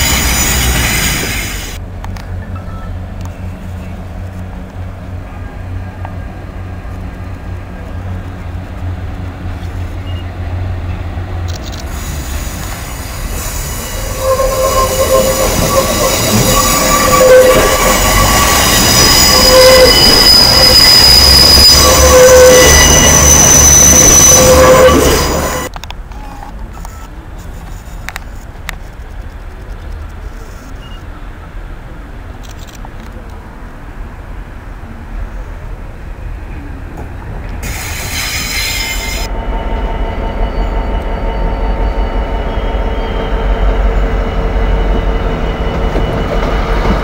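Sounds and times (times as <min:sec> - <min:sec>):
train wheels squealing: 0:00.0 - 0:01.8, 0:11.6 - 0:27.1, 0:37.6 - 0:47.0
diesel train rumbling past: 0:00.0 - 0:25.8, 0:33.2 - 0:47.0
station background noise: 0:00.0 - 0:47.0.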